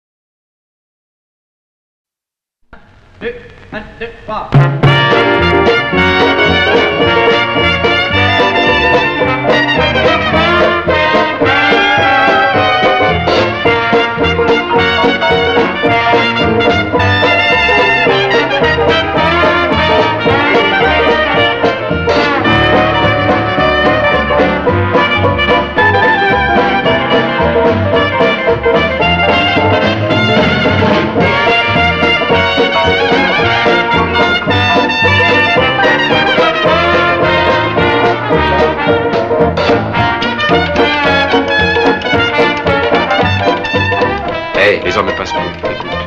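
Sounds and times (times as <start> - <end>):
drums: 2.7 - 46.0
low bass line: 3.1 - 44.4
jazz band playing swing: 4.5 - 46.0
clarinet: 4.6 - 46.0
guitar: 4.6 - 46.0
piano: 4.6 - 46.0.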